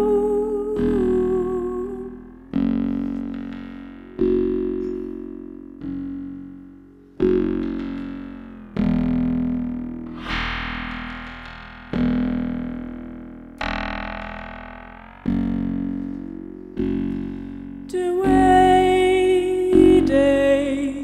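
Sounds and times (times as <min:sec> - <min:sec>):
synthesizer notes: 0:02.6 - 0:20.8.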